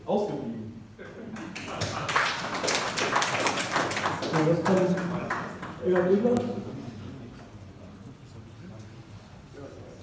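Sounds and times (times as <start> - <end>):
audience clapping: 1.3 - 6.4.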